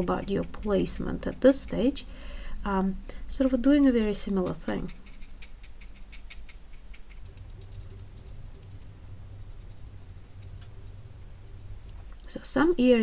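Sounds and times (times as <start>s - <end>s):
low steady hum: 0.0s - 13.0s
brush dabbing on paper: 4.4s - 12.1s.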